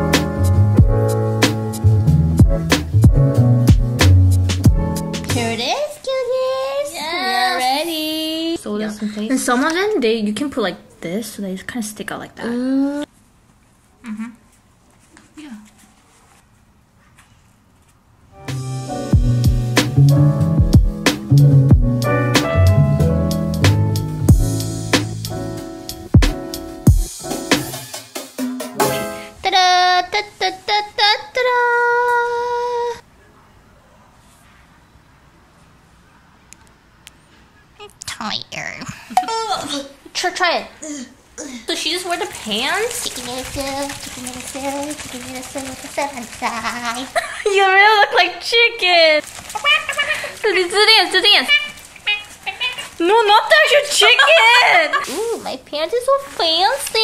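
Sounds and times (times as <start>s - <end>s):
faint room noise: 5.3s - 18.5s, 29.1s - 57.0s.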